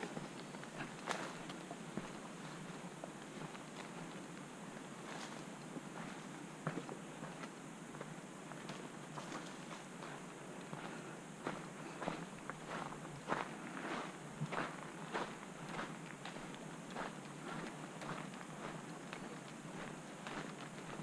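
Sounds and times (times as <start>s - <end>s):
footsteps on dirt trail: 0.0s - 21.0s.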